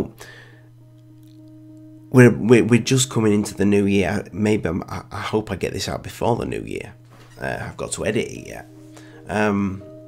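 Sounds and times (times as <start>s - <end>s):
steady low hum: 0.0s - 10.0s
soft breath: 0.2s - 0.8s, 8.8s - 9.3s.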